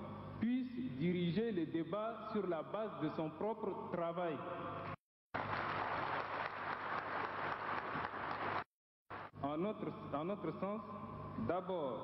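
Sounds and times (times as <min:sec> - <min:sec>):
audience applauding: 0:05.4 - 0:09.3.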